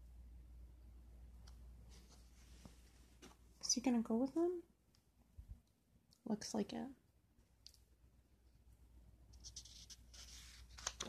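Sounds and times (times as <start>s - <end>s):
paper pages turning: 9.4s - 11.0s.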